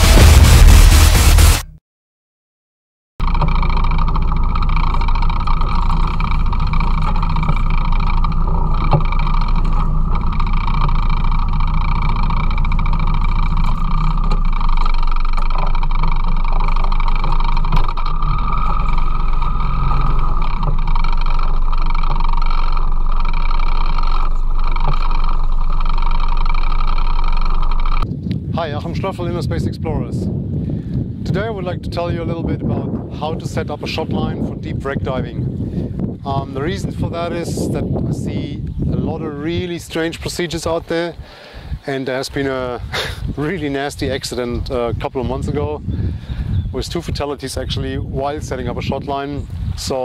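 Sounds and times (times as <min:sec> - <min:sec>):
boat engine humming: 0:03.2 - 0:28.0.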